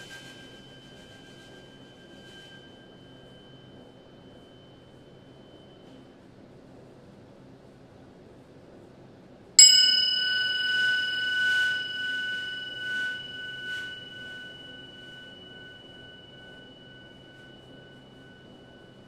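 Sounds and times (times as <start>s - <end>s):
small cymbal ringing: 0.0s - 6.0s, 9.6s - 19.0s.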